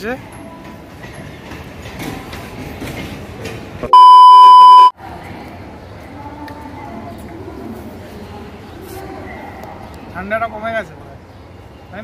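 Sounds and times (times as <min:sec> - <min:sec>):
railway platform background noise: 0:00.0 - 0:12.0
electronic beep: 0:03.9 - 0:04.9.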